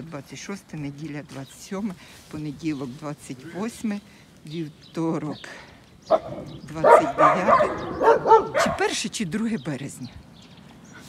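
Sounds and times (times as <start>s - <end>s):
dog barking: 6.1s - 8.9s.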